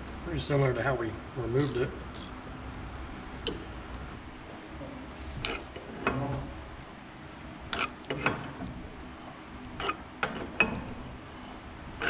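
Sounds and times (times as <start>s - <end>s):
metal tool clinking and clicking: 1.6s - 2.4s.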